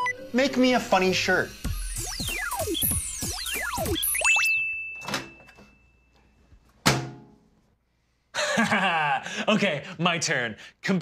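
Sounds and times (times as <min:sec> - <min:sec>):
high beep: 0:00.0 - 0:00.2, 0:01.9 - 0:05.7
falling electronic sweeps: 0:00.0 - 0:04.6
sharp thunk: 0:06.8 - 0:07.3.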